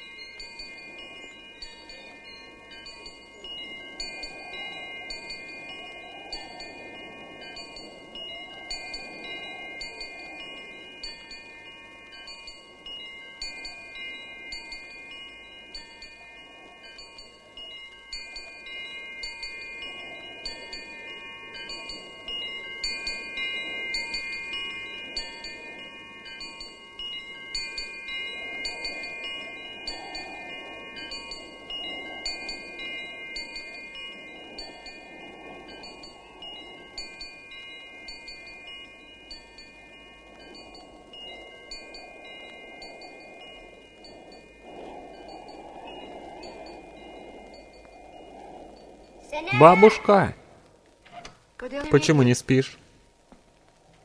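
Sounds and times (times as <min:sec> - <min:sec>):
chime-like ringing tones: 0:00.0 - 0:50.4
soft rushing sound: 0:13.7 - 0:51.0.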